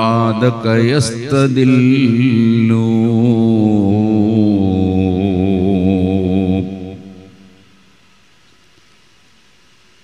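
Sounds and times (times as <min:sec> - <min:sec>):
man chanting verse: 0:00.0 - 0:07.4.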